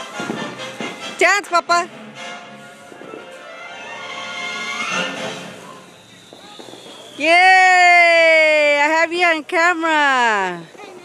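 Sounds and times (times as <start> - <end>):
sparkler fizzing and crackling: 0.0 - 1.4, 2.7 - 11.0
background music: 0.0 - 5.8
voices: 5.6 - 11.0.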